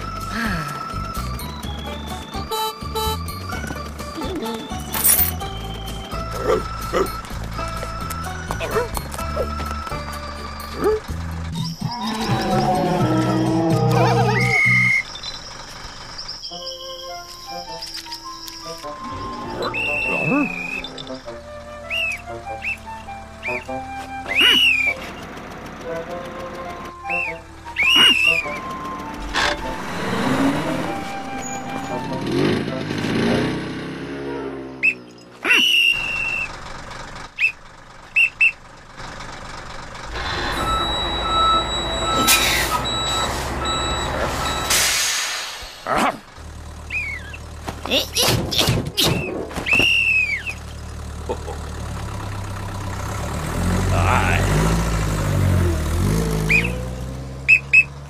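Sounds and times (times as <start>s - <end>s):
cartoon background music: 0.0s - 15.0s, 16.4s - 25.2s, 25.8s - 34.8s
high rising whistle-like chirps: 18.3s - 21.1s, 29.2s - 32.5s.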